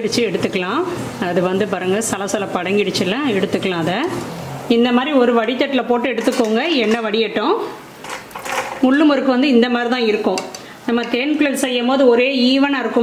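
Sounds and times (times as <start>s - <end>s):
woman talking: 0.0s - 7.8s, 8.8s - 13.0s
strainer stirring through oil: 8.0s - 9.0s.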